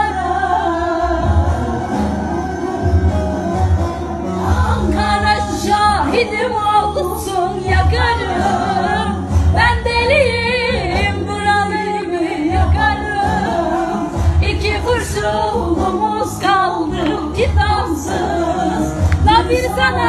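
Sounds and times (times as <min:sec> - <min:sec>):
backing music with deep bass: 0:00.0 - 0:20.0.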